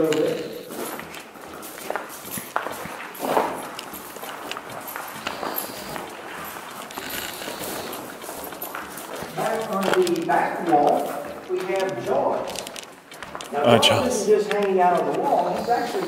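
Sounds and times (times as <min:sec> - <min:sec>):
foot scraping on grit: 0:00.0 - 0:16.0
footsteps on gritty path: 0:00.0 - 0:16.0.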